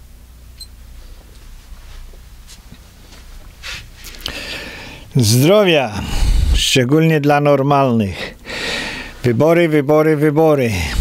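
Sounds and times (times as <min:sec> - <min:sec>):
low electrical hum: 0:00.0 - 0:11.0
faint rustling: 0:00.9 - 0:04.6.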